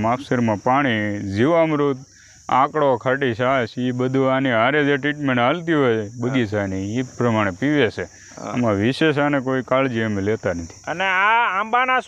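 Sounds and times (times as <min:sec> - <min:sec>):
insects buzzing: 0:00.0 - 0:12.0
man talking: 0:00.0 - 0:12.0.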